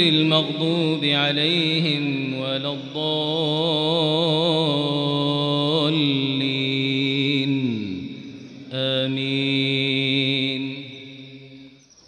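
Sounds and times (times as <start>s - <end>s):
man chanting into a microphone: 0.0s - 11.7s.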